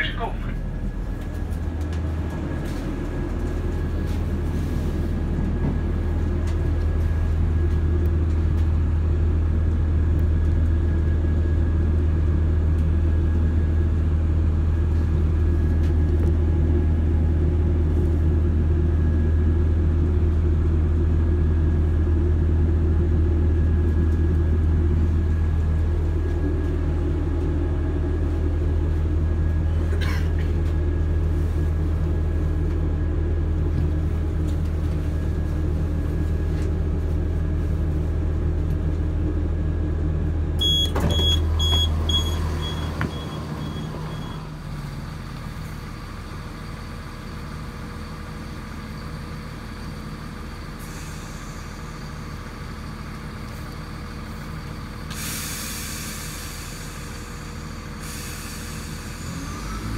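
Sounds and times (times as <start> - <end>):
train diesel engine drone: 0.0 - 59.9.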